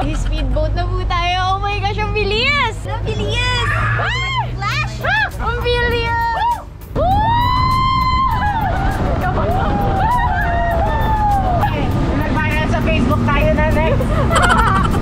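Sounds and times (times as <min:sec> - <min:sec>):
speedboat engine and spray: 0:04.2 - 0:15.0.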